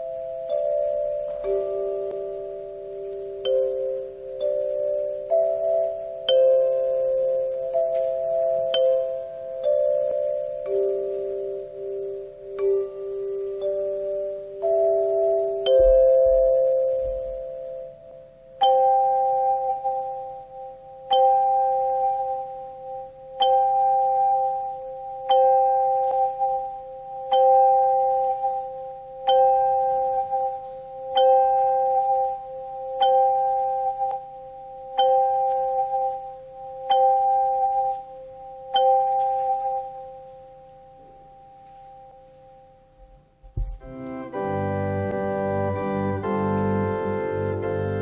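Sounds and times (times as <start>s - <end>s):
handchimes ringing: 0.0s - 46.0s.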